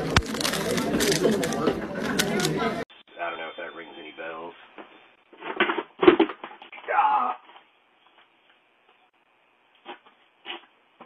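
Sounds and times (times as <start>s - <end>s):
plastic wrapper crinkling: 0.0s - 2.5s.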